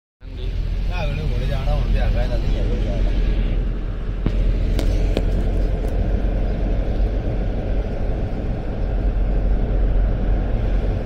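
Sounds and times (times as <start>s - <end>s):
engine and road rumble: 0.2s - 11.0s.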